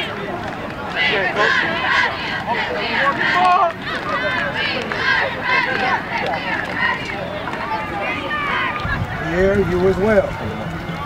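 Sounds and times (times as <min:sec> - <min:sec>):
many voices talking and calling: 0:00.0 - 0:11.0.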